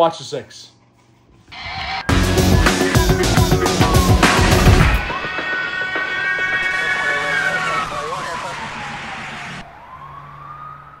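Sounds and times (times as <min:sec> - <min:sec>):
police siren wailing: 0:01.5 - 0:11.0.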